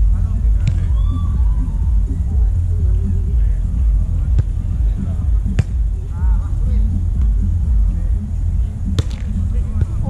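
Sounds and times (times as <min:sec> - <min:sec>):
steady low rumble: 0:00.0 - 0:10.0
hand slapping volleyball: 0:09.0 - 0:09.3.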